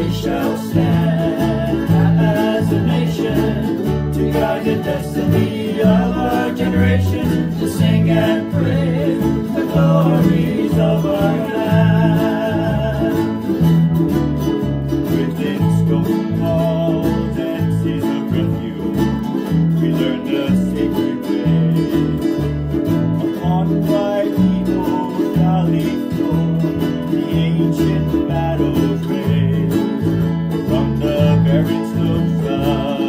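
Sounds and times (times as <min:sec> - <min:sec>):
plucked accompaniment: 0:00.0 - 0:33.0
strummed ukulele: 0:00.0 - 0:33.0.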